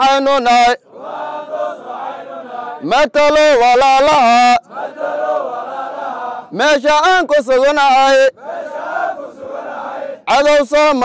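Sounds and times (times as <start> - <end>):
person chanting a song: 0.4 - 6.6.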